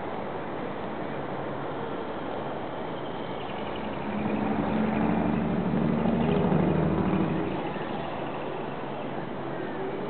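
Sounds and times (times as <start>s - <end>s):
outdoor city noise: 0.0s - 10.0s
passing vehicle engine hum: 3.0s - 10.0s.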